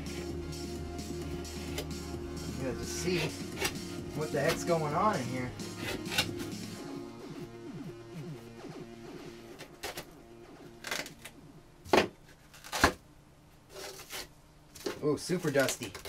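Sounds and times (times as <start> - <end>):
background music: 0.0 - 11.8.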